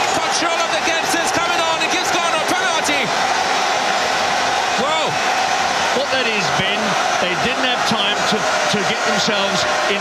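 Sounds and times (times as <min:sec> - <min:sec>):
pitched crowd calls: 0:00.0 - 0:10.0
stadium crowd cheering: 0:00.0 - 0:10.0.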